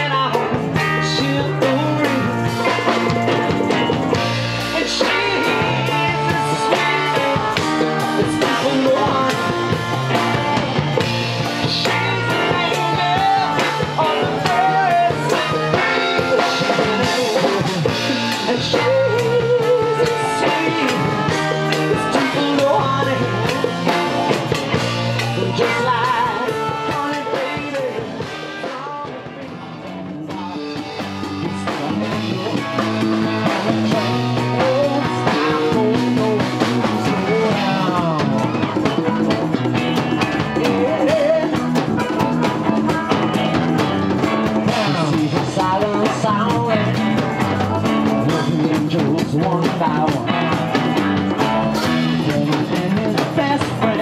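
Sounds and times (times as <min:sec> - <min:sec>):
bass guitar: 0:00.0 - 0:54.0
drum kit: 0:00.0 - 0:54.0
electric guitar lead lines: 0:00.0 - 0:54.0.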